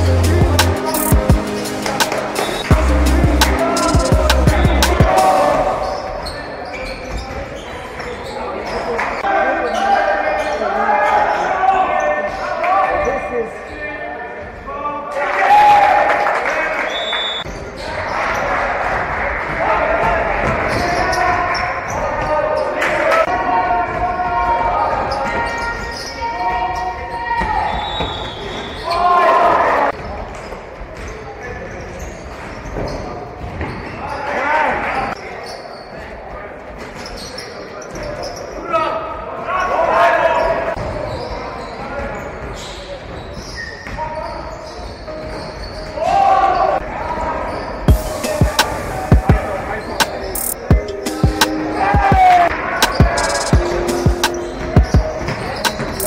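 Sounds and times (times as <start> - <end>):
players' voices echoing: 0.0 - 27.8, 33.2 - 56.0.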